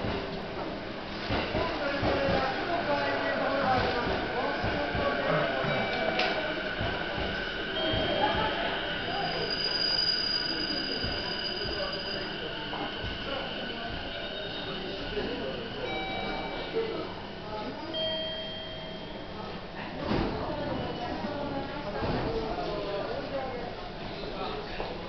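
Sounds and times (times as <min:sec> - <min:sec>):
murmur of voices: 0:00.0 - 0:25.0
train noise: 0:00.0 - 0:25.0.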